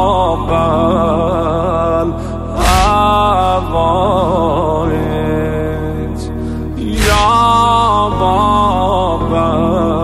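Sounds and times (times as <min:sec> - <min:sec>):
man singing a mournful lament: 0:00.0 - 0:10.0
low sustained backing drone: 0:01.2 - 0:08.6
heavy thump: 0:02.6 - 0:03.3, 0:07.0 - 0:07.6.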